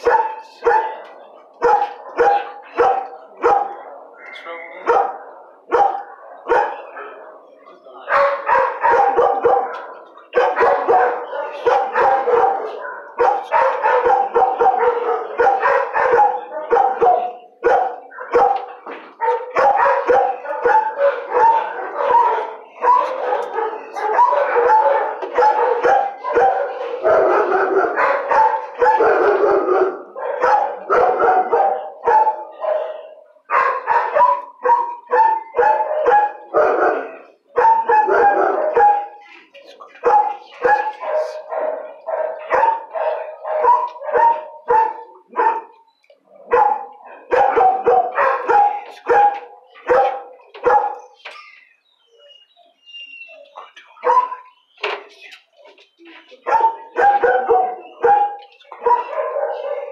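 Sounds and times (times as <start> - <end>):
dogs barking: 0.0 - 59.9.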